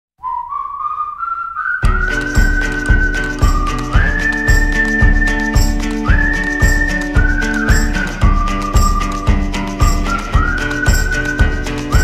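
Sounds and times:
whistled melody: 0:00.2 - 0:12.0
music with drum beat: 0:01.8 - 0:12.0.

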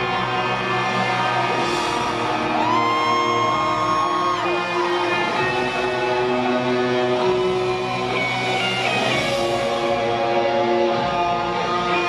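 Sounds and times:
electric guitars sustained chords: 0:00.0 - 0:12.0.

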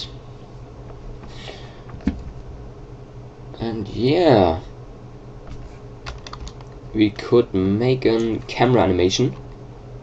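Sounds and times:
low steady hum: 0:00.0 - 0:10.0
computer keys clicking: 0:06.1 - 0:06.7.

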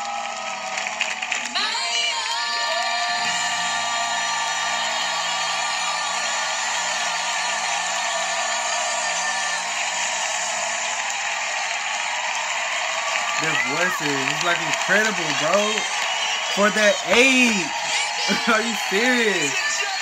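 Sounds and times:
audience cheering and whooping: 0:00.0 - 0:20.0
backing music: 0:13.4 - 0:19.6.

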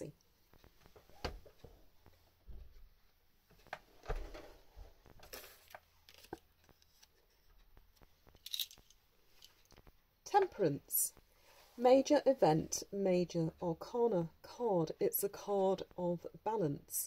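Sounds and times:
tarot cards being shuffled: 0:05.1 - 0:07.2, 0:08.2 - 0:09.9.

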